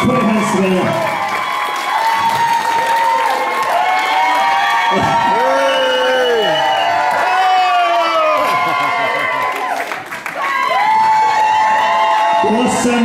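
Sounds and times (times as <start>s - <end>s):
applause: 0.0s - 13.0s
audience cheering and whooping: 0.0s - 13.0s.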